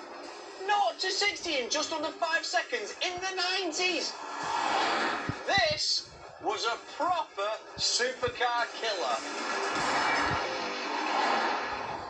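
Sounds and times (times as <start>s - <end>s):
background music: 0.0s - 12.0s
car passing at speed: 4.2s - 5.4s, 9.1s - 12.0s.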